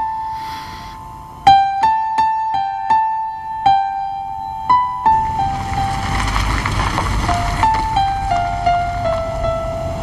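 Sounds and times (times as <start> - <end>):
car engine rumble: 0.0 - 10.0
soft piano music: 0.0 - 10.0
tyre noise: 5.1 - 9.3.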